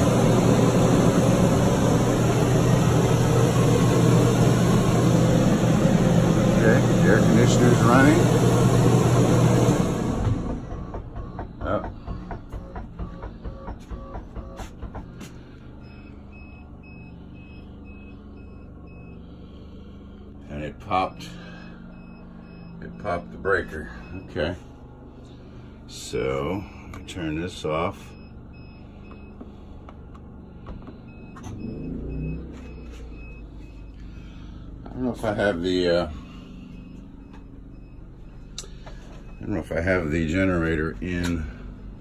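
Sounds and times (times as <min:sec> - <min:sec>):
generator engine humming: 0:00.0 - 0:42.0
pulsing tone with clicks: 0:10.7 - 0:15.1
electronic warning beeper: 0:12.5 - 0:14.9, 0:27.8 - 0:41.0.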